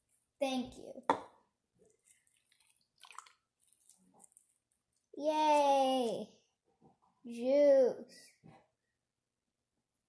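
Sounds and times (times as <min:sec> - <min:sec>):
wet squishing of squeezed juice: 0:01.8 - 0:06.2.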